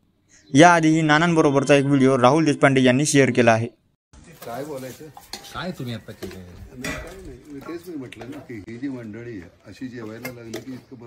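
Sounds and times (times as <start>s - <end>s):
metal ladle scraping metal pot: 4.4s - 7.2s.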